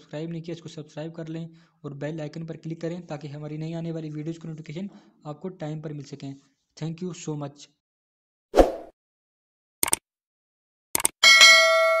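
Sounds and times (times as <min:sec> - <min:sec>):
notification bell ringing: 0:11.2 - 0:12.0.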